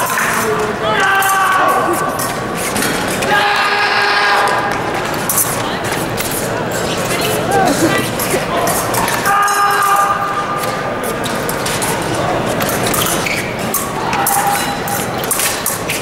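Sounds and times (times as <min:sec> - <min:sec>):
indistinct crowd chatter: 0:00.0 - 0:16.0.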